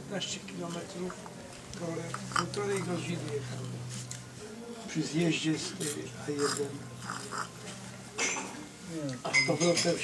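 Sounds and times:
indistinct conversational speech: 0:00.1 - 0:10.0.

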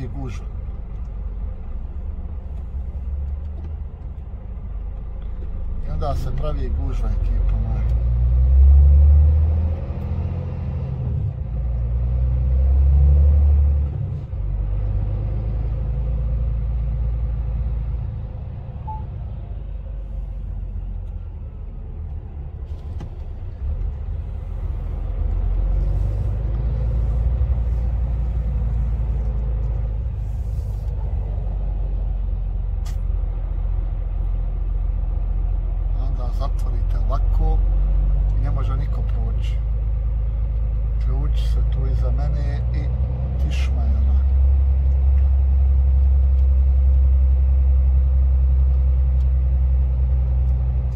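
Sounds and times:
road noise: 0:00.0 - 0:50.9
truck engine rumble: 0:00.0 - 0:50.9.

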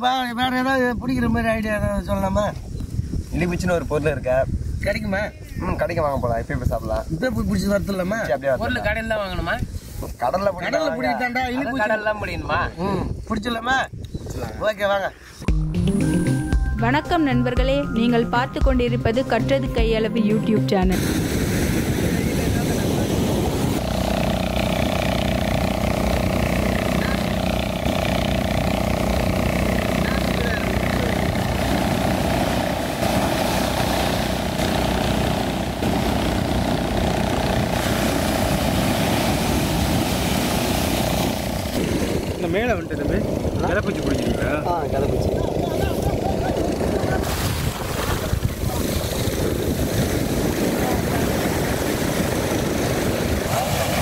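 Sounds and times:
wind on microphone: 0:00.0 - 0:15.5, 0:20.8 - 0:54.0
steady hum: 0:20.8 - 0:43.6
surf breaking: 0:20.9 - 0:54.0.

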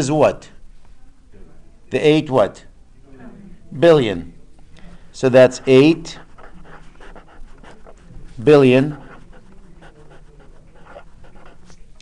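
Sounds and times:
marker scratching on paper: 0:05.4 - 0:12.0.

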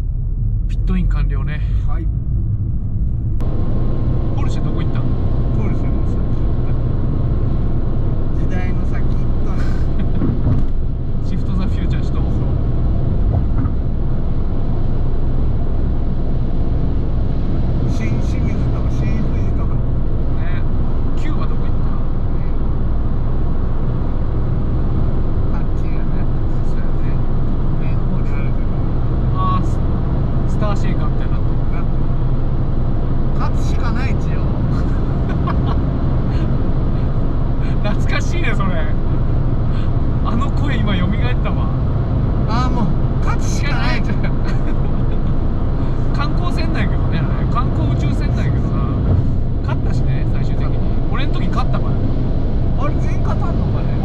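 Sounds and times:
car engine drone: 0:00.0 - 0:54.0
tyre and road noise: 0:00.0 - 0:54.0.

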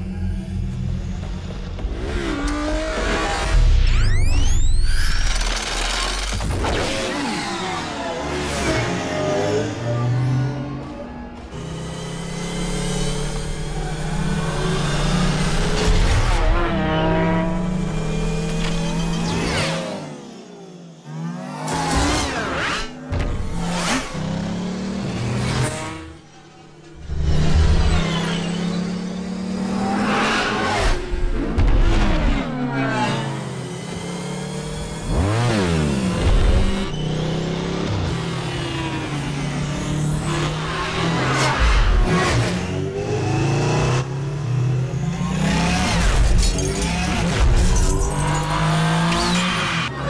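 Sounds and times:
electronic engine whines: 0:00.0 - 0:50.0.

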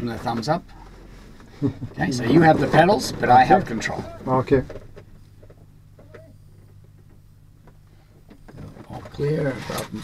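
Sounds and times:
plane engine idling hum: 0:00.0 - 0:10.0.

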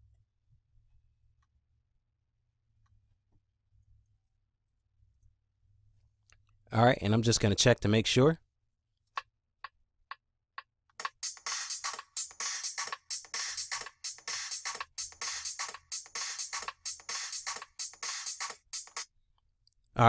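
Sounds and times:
looped drum break: 0:11.0 - 0:19.1.

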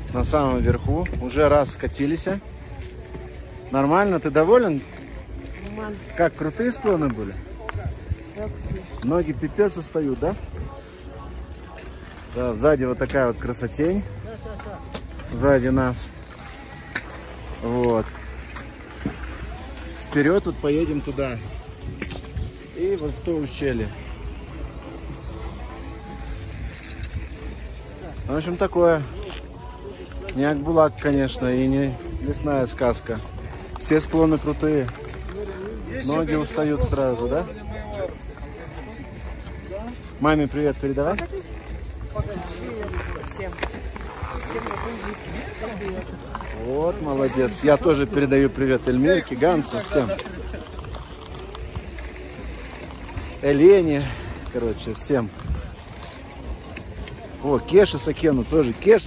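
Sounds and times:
wind rumble on microphone: 0:00.0 - 0:01.9, 0:21.1 - 0:23.2, 0:54.1 - 0:56.6
faint background music: 0:00.0 - 0:59.0.

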